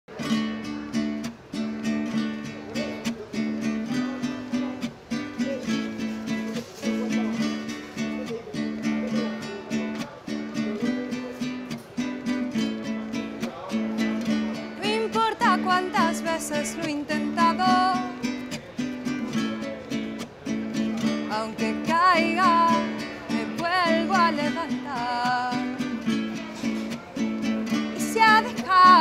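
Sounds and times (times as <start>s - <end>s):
strummed acoustic string instrument: 0.1s - 29.0s
woman singing: 14.8s - 18.2s, 21.2s - 26.2s, 27.7s - 29.0s.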